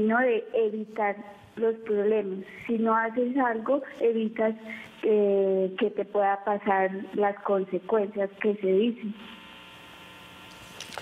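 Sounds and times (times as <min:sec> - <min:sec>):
telephone line hum and hiss: 0:00.0 - 0:11.0.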